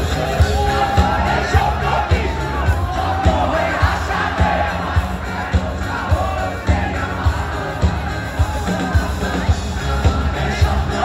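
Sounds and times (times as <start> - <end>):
crowd singing along: 0.0 - 11.0
rock band playing live: 0.0 - 11.0.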